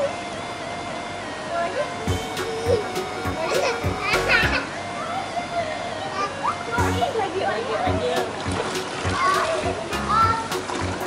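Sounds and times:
background music: 1.2s - 11.0s
woman laughing: 2.5s - 4.7s
toddler's voice: 9.1s - 10.5s.

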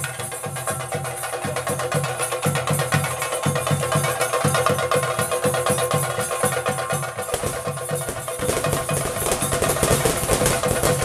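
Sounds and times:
fast ritual drumming: 0.0s - 11.0s.

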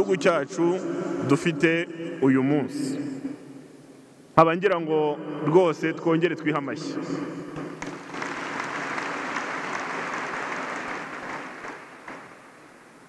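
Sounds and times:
audience applauding: 7.7s - 13.0s.

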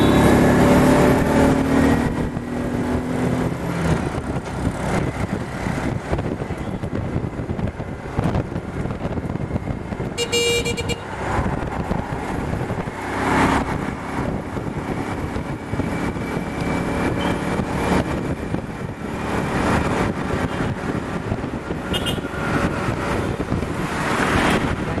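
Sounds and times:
road traffic: 0.0s - 25.0s
vehicles passing close by: 0.0s - 25.0s.

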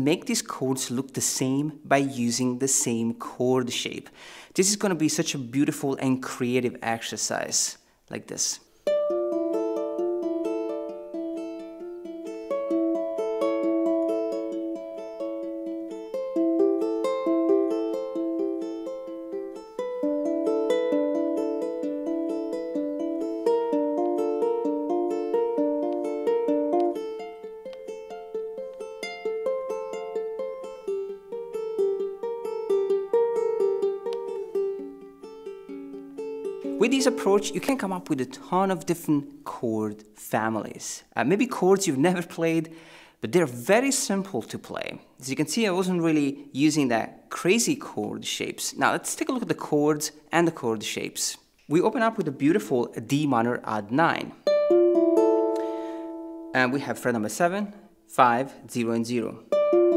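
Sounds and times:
ukulele fingerpicked arpeggios: 8.8s - 39.5s, 54.1s - 56.8s, 59.4s - 59.9s.

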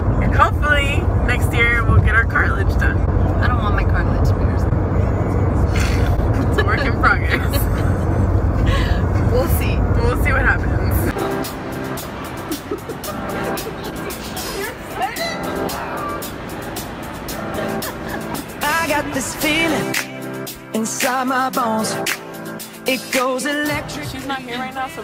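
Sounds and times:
car cabin road rumble: 0.0s - 21.9s, 22.9s - 25.0s
background music: 8.8s - 25.0s
crowd chatter: 11.1s - 19.5s
faint voices: 12.3s - 16.6s.

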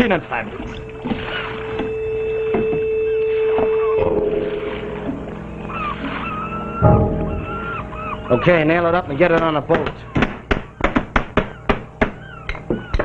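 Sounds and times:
gulls crying: 0.0s - 13.0s
ship's horn: 0.8s - 8.4s.

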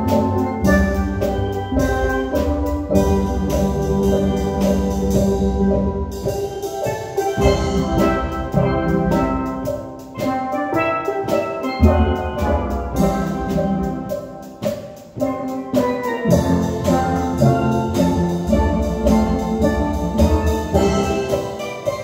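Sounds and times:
steel pan ensemble playing: 0.0s - 22.0s.

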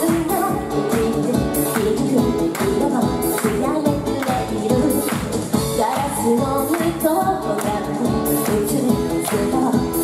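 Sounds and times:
loud backing music with beat: 0.0s - 10.0s
woman singing into microphone: 0.0s - 10.0s.

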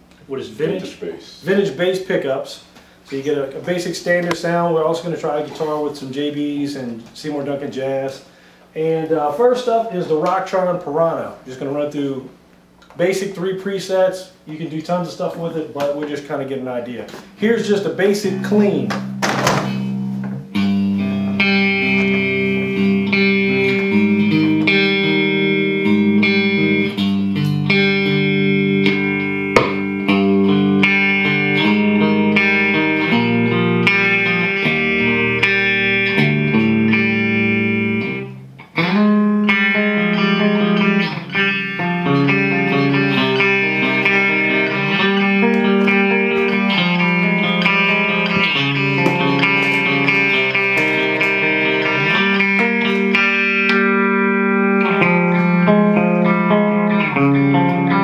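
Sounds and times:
clean electric guitar chords: 17.1s - 58.0s.

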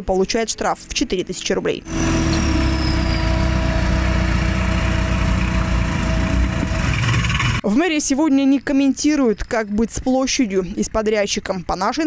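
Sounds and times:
skid-steer loader engine running: 1.8s - 7.6s.

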